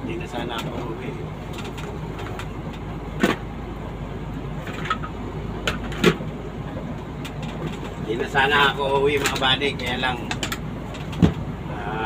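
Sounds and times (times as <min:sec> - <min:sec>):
engine and road rumble in cabin: 0:00.0 - 0:12.0.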